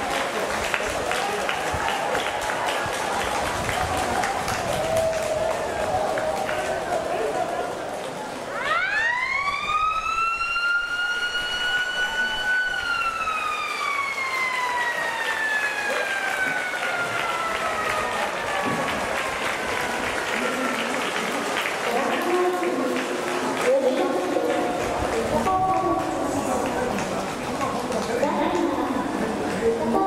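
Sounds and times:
crowd applause: 0.0s - 30.0s
stadium siren: 8.3s - 22.1s, 24.6s - 26.4s.

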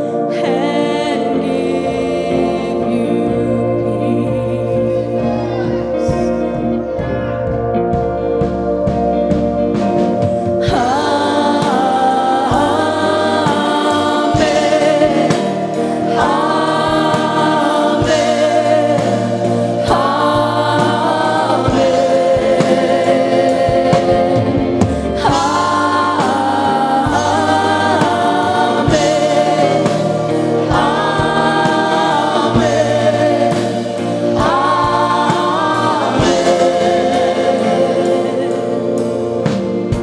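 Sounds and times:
men and women singing: 0.0s - 7.1s, 10.6s - 40.0s
drums: 0.0s - 40.0s
guitar: 0.0s - 40.0s
worship band playing: 0.0s - 40.0s.

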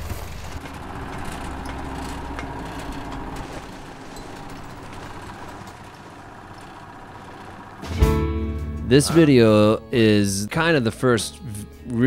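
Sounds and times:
drilling rig engine rumble: 0.0s - 12.0s.

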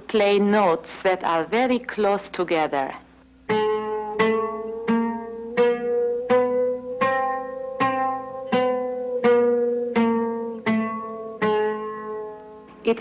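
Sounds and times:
oud notes plucked: 3.4s - 13.0s.

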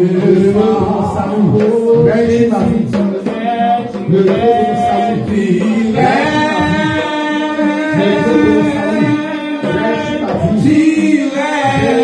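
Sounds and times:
voices singing long notes: 0.0s - 12.0s.

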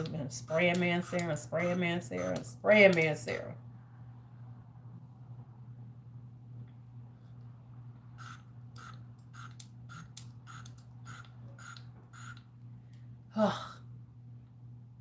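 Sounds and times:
low electrical hum: 0.0s - 15.0s
perfume atomizer spraying: 8.2s - 12.4s.

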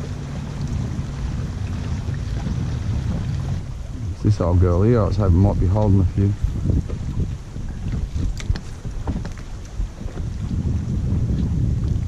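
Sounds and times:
boat motor humming: 0.0s - 12.0s
water noise: 0.0s - 12.0s
wind buffeting microphone: 0.0s - 12.0s.

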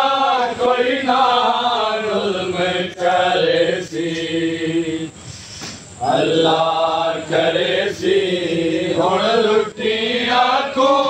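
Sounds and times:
men chanting a lament: 0.0s - 5.2s, 6.0s - 11.0s.

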